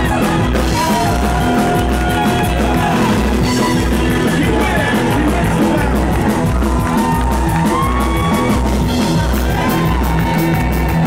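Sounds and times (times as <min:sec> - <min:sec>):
drum kit: 0:00.0 - 0:11.0
electric guitars: 0:00.0 - 0:11.0
rockabilly band playing loud: 0:00.0 - 0:11.0.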